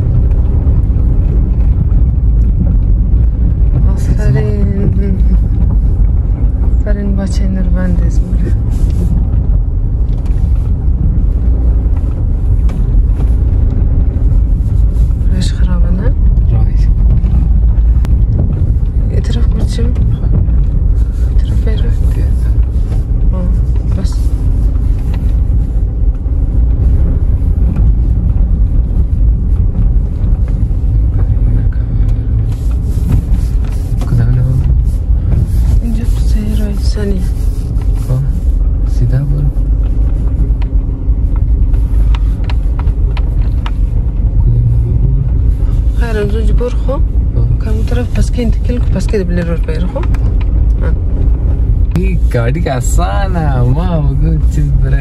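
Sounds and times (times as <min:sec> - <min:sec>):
car engine and road noise: 0:00.0 - 0:55.0.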